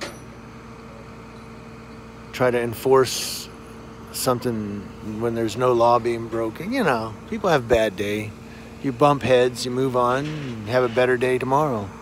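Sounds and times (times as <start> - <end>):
vehicles idling: 2.3 - 12.0.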